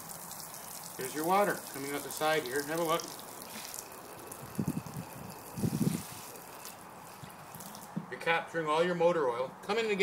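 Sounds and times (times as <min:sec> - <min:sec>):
water splashing onto panel: 0:00.0 - 0:08.1.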